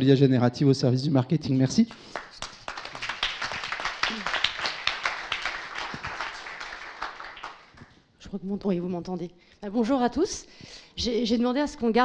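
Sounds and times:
audience applauding: 0:01.9 - 0:07.9.

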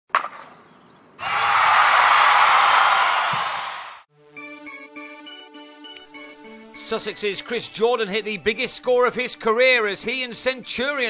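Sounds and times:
sharp crack: 0:00.1 - 0:00.6.

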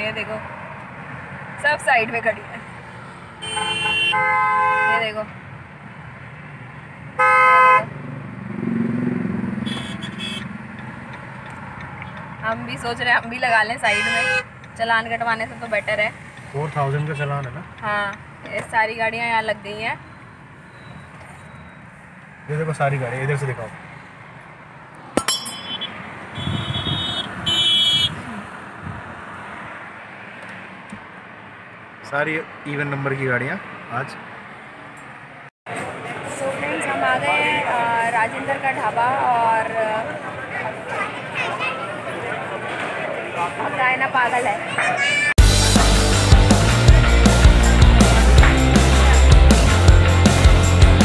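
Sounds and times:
traffic engines rumbling: 0:00.0 - 0:51.0
short high-pitched car horn beeps: 0:03.4 - 0:05.0, 0:09.6 - 0:10.5, 0:25.6 - 0:28.2.

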